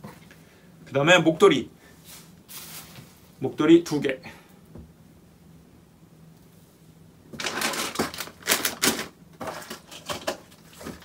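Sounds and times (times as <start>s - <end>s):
items rattling in a suitcase: 7.4s - 11.0s.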